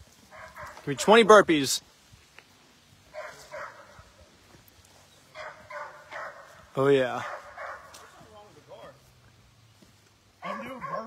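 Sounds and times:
faint dog barking: 0:00.2 - 0:01.0, 0:03.1 - 0:04.4, 0:05.3 - 0:08.4, 0:10.4 - 0:11.0.

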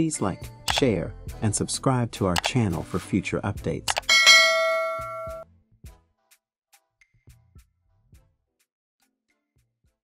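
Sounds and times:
bell-like ding: 0:04.0 - 0:05.4.

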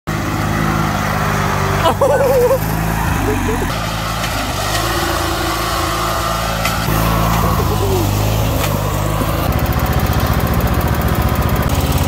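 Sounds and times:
riding lawn mower engine: 0:00.1 - 0:12.0.

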